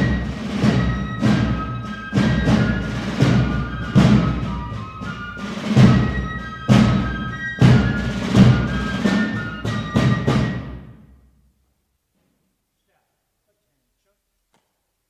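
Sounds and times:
fifes playing a march: 0.0 - 11.2
snare drums: 0.0 - 11.2.

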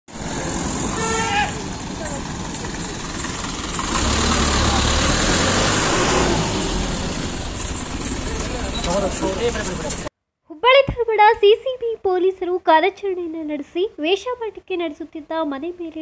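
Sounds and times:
bus engine rumbling: 0.1 - 10.1
street noise: 0.1 - 10.1.

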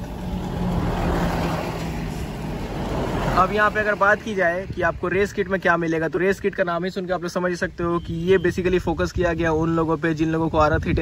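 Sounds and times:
motor vehicle passing: 0.0 - 4.3.

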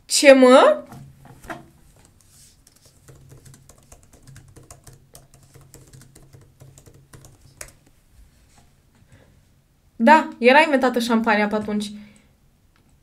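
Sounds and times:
computer keyboard typing: 2.0 - 7.8.

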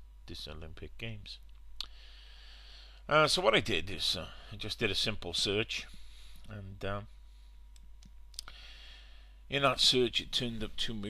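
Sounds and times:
low steady hum: 0.0 - 11.0
faint sharp clicks: 7.7 - 8.6
person speaking: 9.5 - 11.0.

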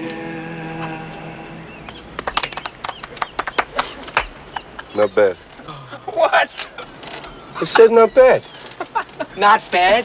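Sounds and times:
people clapping sparsely: 1.8 - 4.9.

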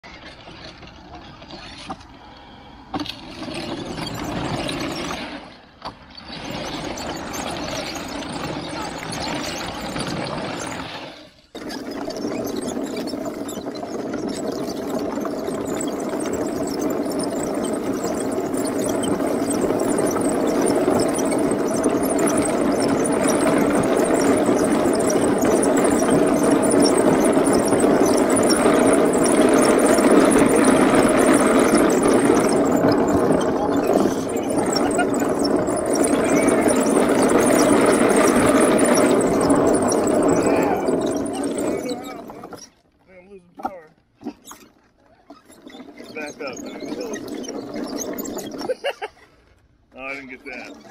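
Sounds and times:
electric motors and wooden tracks rattling: 0.0 - 50.9.

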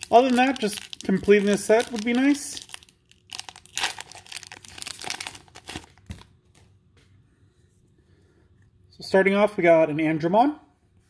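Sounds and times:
wrapper crinkling and tearing: 0.0 - 6.3.

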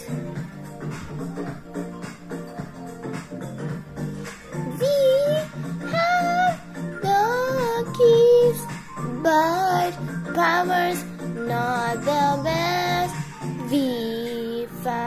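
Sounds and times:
musical backing: 0.0 - 15.0
child singing: 4.6 - 15.0.

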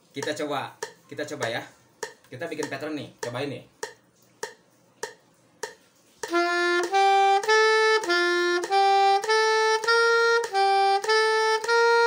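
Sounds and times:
metronome clicking: 0.2 - 12.0
soprano saxophone playing: 6.3 - 12.0.

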